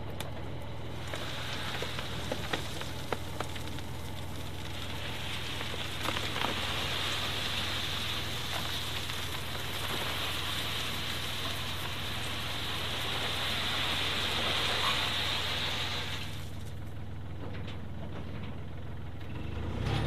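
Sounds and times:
engine humming: 0.0 - 20.0
soil pouring from a skip: 0.8 - 16.9.

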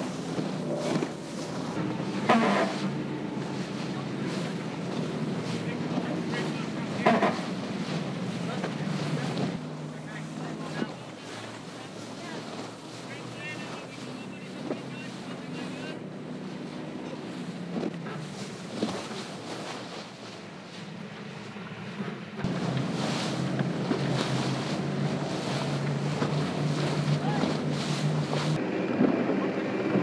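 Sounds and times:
motorboat engine running: 0.0 - 30.0
water rushing and splashing: 0.0 - 30.0
wind: 0.0 - 30.0.

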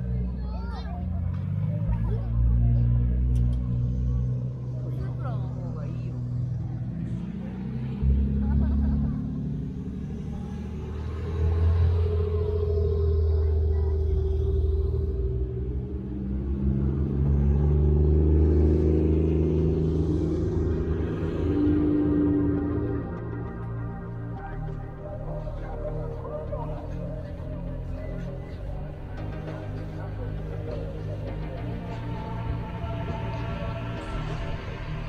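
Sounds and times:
car engine running at low revs: 0.0 - 35.0.

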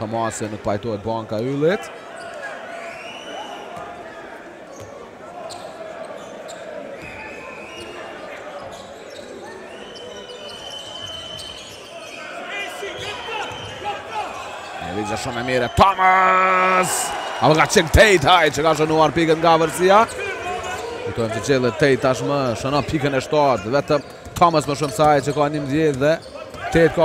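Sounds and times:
crowd murmur in large hall: 0.0 - 27.0.

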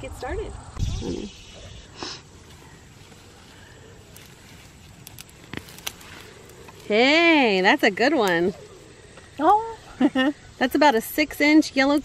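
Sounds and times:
rustling of foliage and soil: 1.5 - 12.0.

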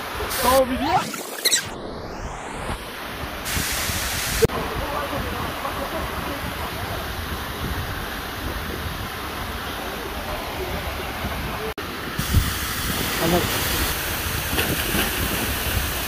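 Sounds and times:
wind buffeting microphone: 2.6 - 16.0
waterfall rushing onto rocks: 3.4 - 16.0.

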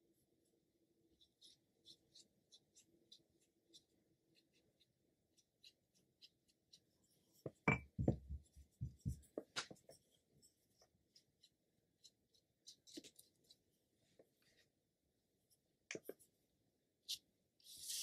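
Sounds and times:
brush stroking on paper: 1.1 - 7.6, 8.3 - 14.7, 17.0 - 18.0
knocks and thumps: 7.6 - 9.3.

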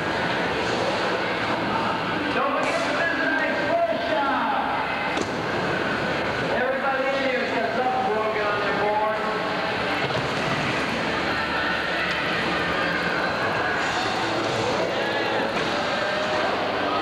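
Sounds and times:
crowd chatter in echoing hall: 0.0 - 17.0.

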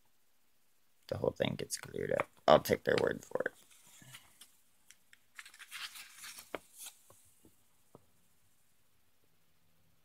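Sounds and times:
paper page turning: 5.2 - 7.2.

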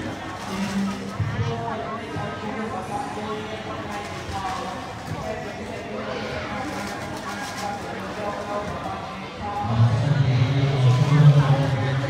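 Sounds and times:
people talking at once: 0.0 - 12.0
loud low voice: 8.1 - 12.0.

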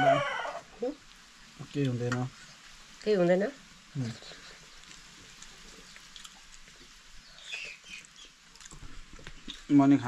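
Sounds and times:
high-pitched animal calls: 0.0 - 1.0.

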